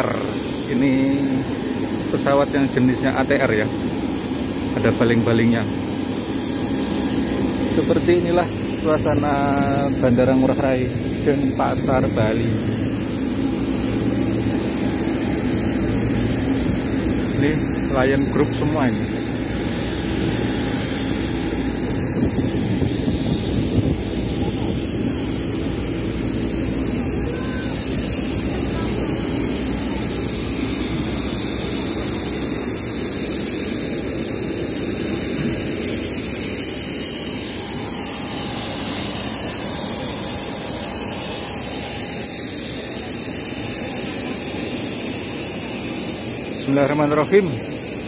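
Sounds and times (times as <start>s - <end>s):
aircraft engine roar with whine: 0.0s - 48.0s.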